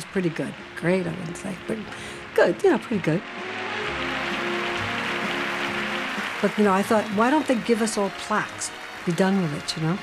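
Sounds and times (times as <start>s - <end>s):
music with long held notes: 0.2s - 10.0s
audience applauding: 3.2s - 10.0s.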